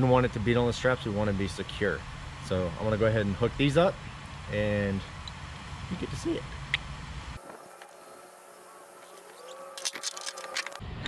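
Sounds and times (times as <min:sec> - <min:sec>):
faint wavering hum: 0:00.0 - 0:11.0.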